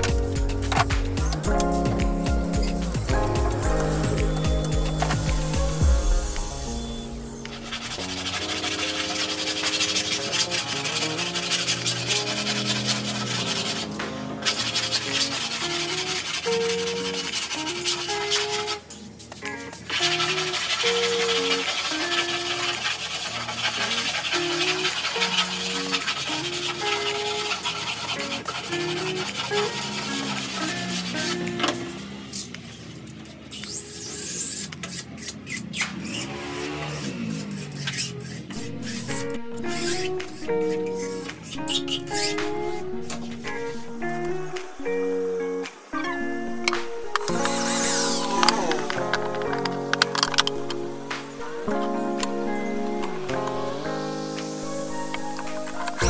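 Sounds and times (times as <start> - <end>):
background music: 0.0 - 32.4, 38.0 - 56.0
sanding block rubbing wood: 0.3 - 19.0, 19.8 - 32.4, 33.6 - 45.8, 46.6 - 51.5.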